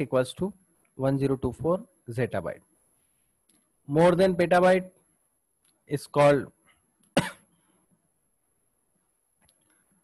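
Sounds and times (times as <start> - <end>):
man coughing: 7.2 - 7.5.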